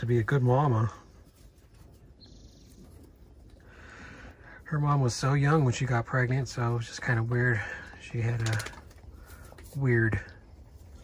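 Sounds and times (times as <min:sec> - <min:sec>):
goats feeding in wooden trough: 0:00.0 - 0:11.0.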